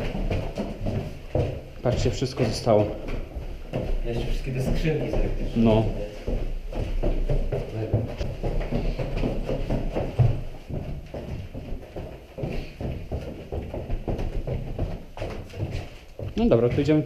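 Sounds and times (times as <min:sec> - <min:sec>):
footsteps running down stairs: 0:00.0 - 0:17.0.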